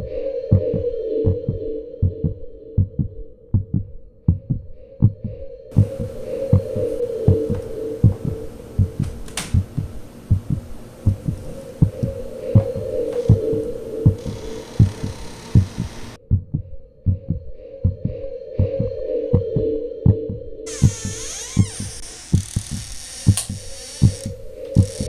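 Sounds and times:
heartbeat double thumps: 0.6s - 25.0s.

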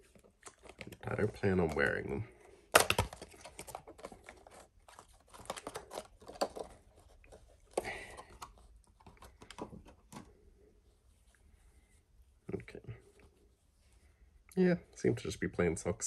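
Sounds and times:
plastic packaging crinkling: 0.0s - 7.4s.

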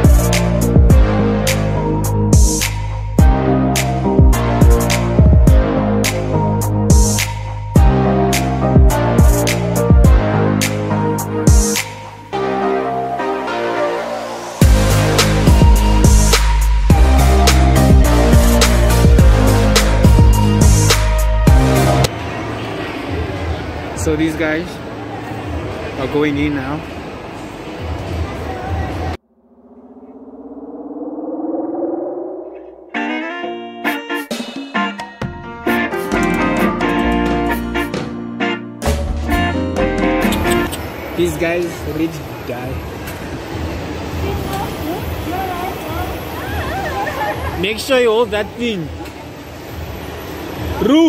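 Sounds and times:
amusement park ambience: 21.8s - 31.3s, 39.4s - 51.0s
synthesizer tone gliding upward: 29.2s - 33.8s.

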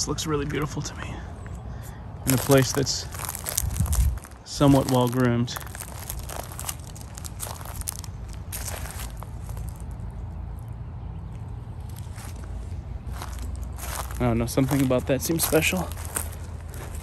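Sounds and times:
steady low rumble: 0.0s - 17.0s
footsteps crunching on dry leaves: 2.2s - 10.2s, 11.7s - 17.0s.

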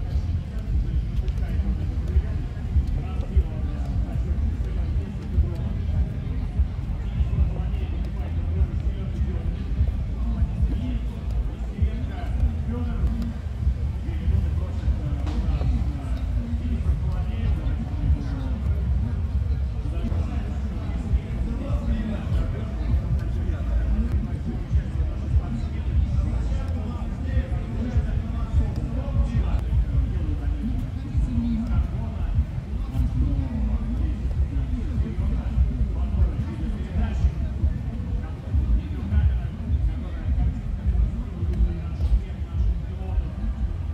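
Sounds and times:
steady low rumble: 0.0s - 43.9s.

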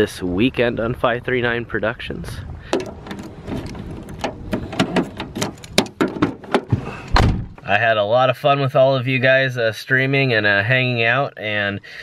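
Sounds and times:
key turning in car door lock: 2.7s - 7.2s
car door opening: 2.7s - 7.7s.

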